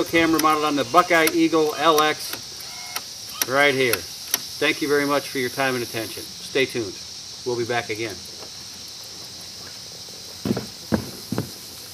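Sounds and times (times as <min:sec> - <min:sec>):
high-pitched insect chorus: 0:00.0 - 0:11.9
footsteps on grass: 0:08.2 - 0:11.9.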